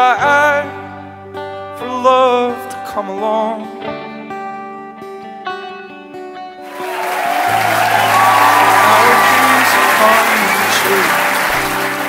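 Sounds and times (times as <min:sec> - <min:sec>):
background music: 0:02.6 - 0:12.0
guests applauding and cheering: 0:06.7 - 0:12.0.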